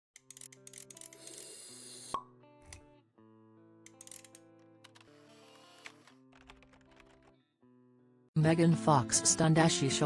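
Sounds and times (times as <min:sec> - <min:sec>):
sustained background music: 0:00.2 - 0:10.0.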